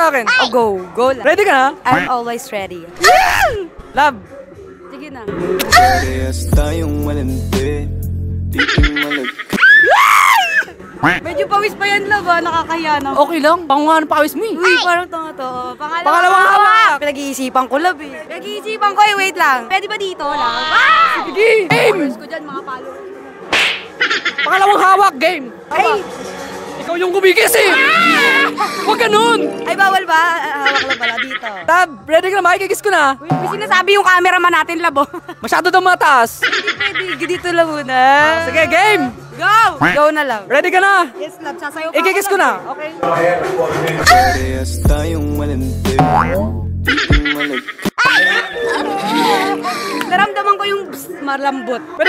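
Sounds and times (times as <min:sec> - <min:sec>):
background music: 0:00.0 - 0:52.0
voices: 0:08.6 - 0:35.4, 0:36.0 - 0:40.5
whip-like swish: 0:23.5 - 0:23.9
cartoon pitch glide effect: 0:46.0 - 0:47.1.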